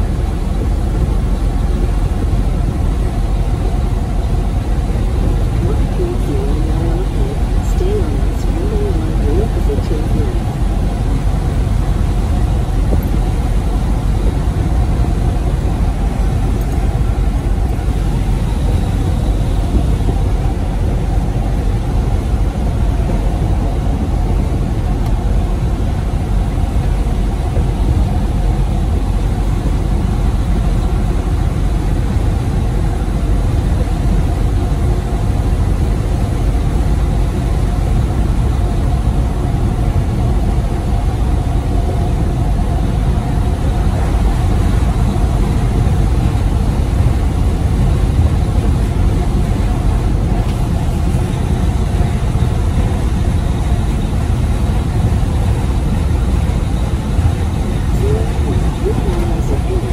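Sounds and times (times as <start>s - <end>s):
road noise: 0.0s - 59.9s
truck engine drone: 0.0s - 59.9s.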